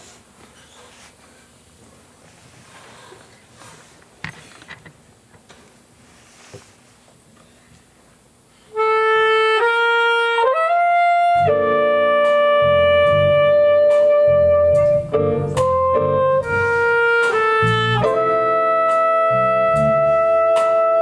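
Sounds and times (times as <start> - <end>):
soprano saxophone jazz melody: 8.7 - 21.0
electric bass: 9.0 - 21.0
keyboard: 11.3 - 21.0.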